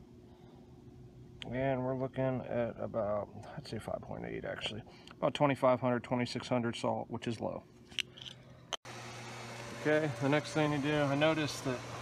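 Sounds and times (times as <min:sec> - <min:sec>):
machine hum with hiss: 0:08.9 - 0:12.0.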